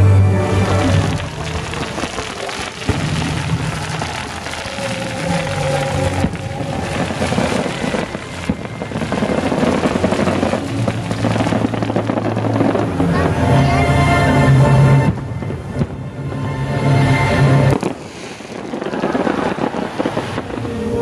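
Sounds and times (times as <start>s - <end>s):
music playing: 0.0s - 18.0s
fireworks crackling: 0.0s - 21.0s
firework bang: 0.6s - 13.3s, 17.7s - 21.0s.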